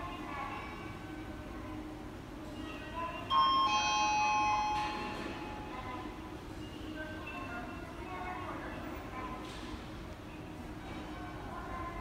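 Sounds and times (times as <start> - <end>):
electronic bell-like chime: 3.3 - 5.6.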